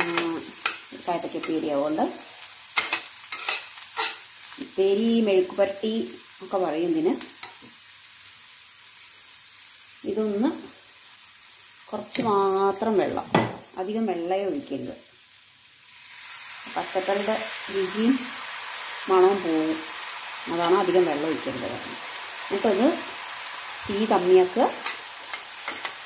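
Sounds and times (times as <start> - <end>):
vegetables sizzling in oil: 0.0 - 26.0
metal spoon scraping pan: 2.8 - 4.2, 24.8 - 26.0.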